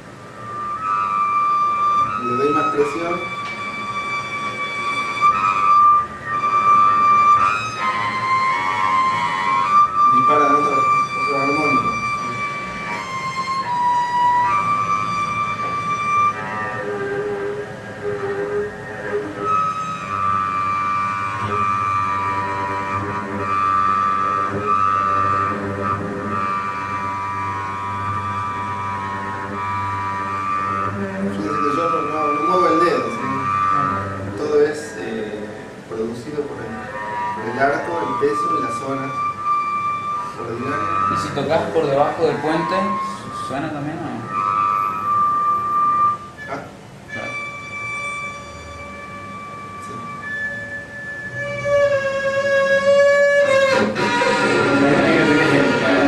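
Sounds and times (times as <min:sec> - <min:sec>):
bowed double bass harmonics: 0:00.0 - 0:56.0.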